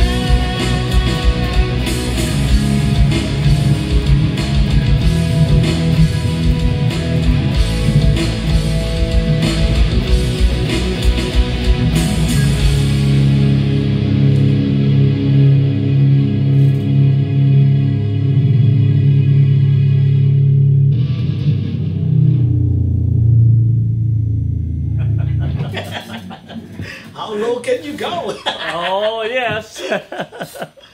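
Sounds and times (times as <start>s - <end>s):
electric guitars playing rock: 0.0s - 27.2s
drum beat: 1.0s - 12.8s.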